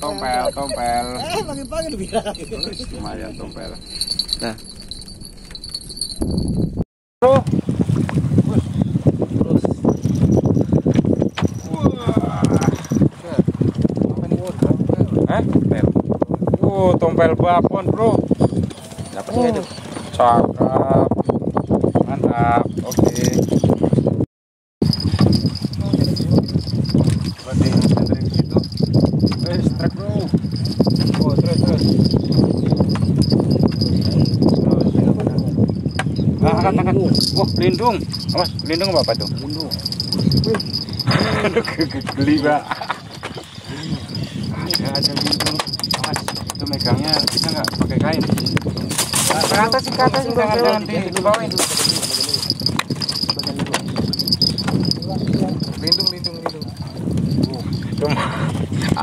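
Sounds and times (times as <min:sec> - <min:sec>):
indistinct voices: 0:00.0 - 0:04.7
people talking and calling out: 0:00.0 - 0:04.7, 0:27.4 - 0:59.0
insects trilling: 0:00.0 - 0:06.4, 0:54.0 - 0:56.2.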